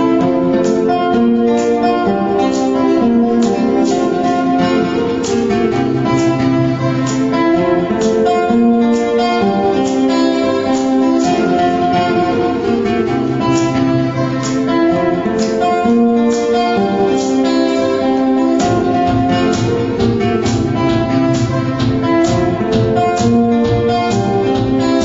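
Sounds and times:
acoustic guitar plucking: 0:00.0 - 0:25.0.

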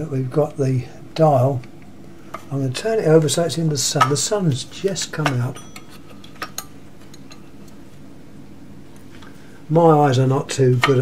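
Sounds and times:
low steady background: 0:00.0 - 0:11.0.

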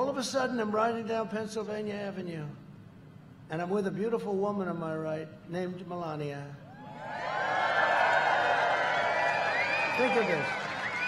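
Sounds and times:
crowd cheering and shouting: 0:06.8 - 0:11.0.

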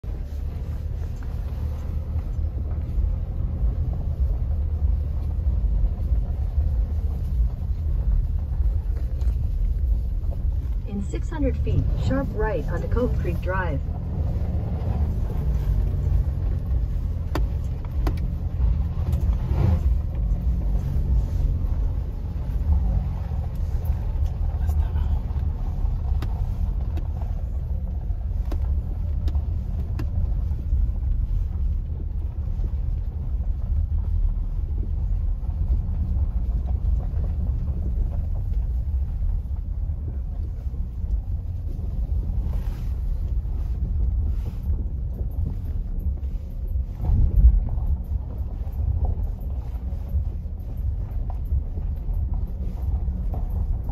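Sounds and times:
tyre road noise rumble: 0:00.0 - 0:53.9.

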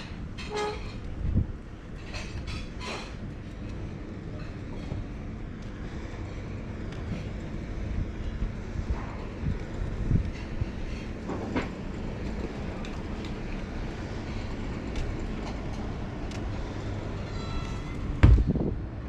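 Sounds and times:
wind rumbling on microphone: 0:00.0 - 0:17.1, 0:18.1 - 0:19.0
high squeak: 0:17.2 - 0:18.0
loud thump: 0:18.2 - 0:18.7.

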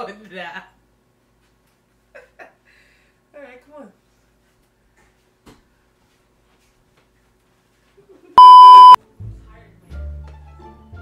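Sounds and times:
electronic censor bleep: 0:08.4 - 0:09.0.

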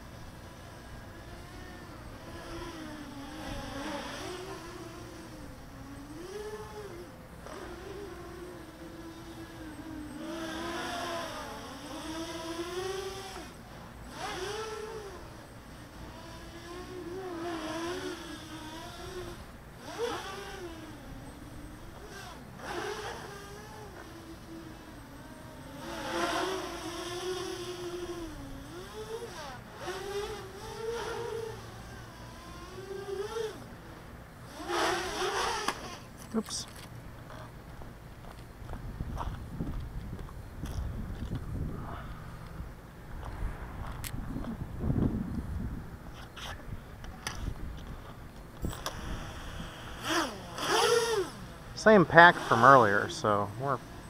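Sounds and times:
drone propellers buzzing whine: 0:00.0 - 0:54.0.

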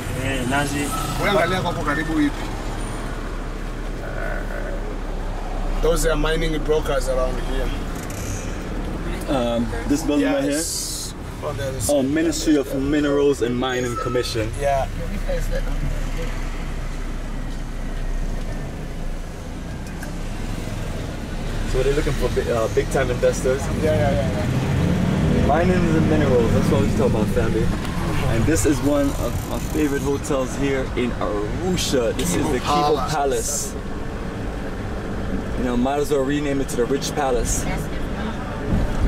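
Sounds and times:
minibus engine rumble: 0:00.0 - 0:39.0
road noise: 0:00.0 - 0:39.0.

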